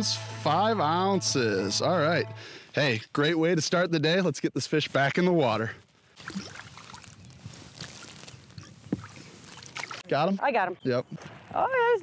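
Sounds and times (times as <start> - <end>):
water lapping against boat: 6.2 - 7.2, 8.7 - 10.1.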